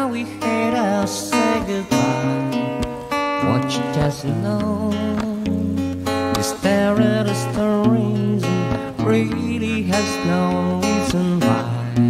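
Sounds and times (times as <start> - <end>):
acoustic guitar: 0.0 - 12.0
man singing with vibrato: 0.0 - 12.0.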